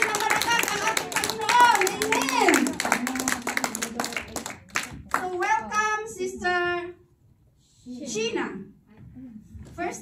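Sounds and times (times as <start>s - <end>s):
people clapping in applause: 0.0s - 5.4s.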